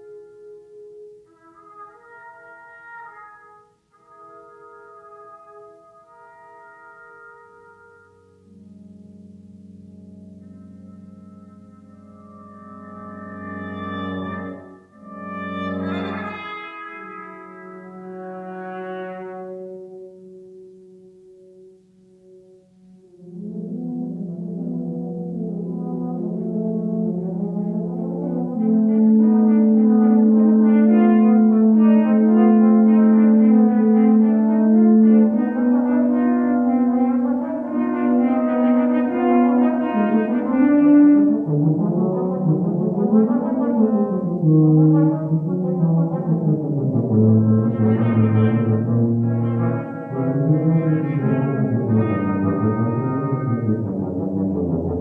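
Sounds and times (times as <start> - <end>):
brass quintet playing: 0.0 - 55.0.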